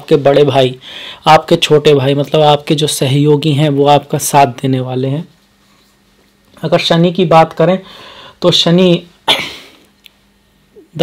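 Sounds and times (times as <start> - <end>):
man coughing: 9.2 - 9.8.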